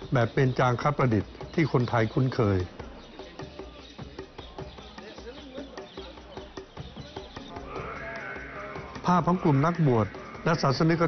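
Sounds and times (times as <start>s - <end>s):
murmur of crowd voices: 0.0s - 11.0s.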